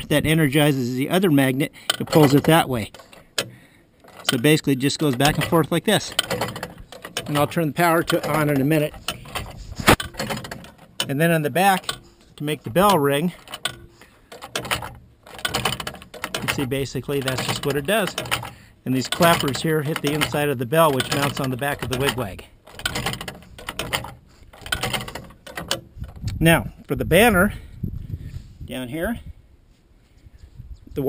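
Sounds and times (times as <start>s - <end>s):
metallic clicks and knocks: 1.1s - 26.5s.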